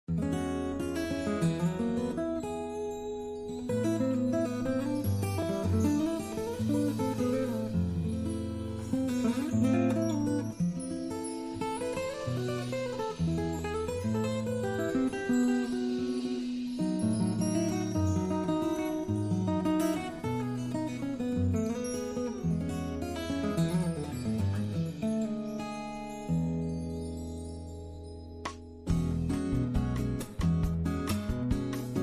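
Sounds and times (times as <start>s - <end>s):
bossa nova with acoustic guitar: 0.0s - 32.0s.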